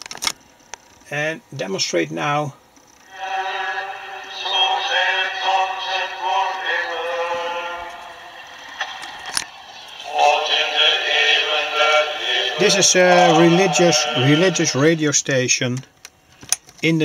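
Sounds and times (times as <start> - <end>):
singing through small radio speaker: 3.1 - 15.1.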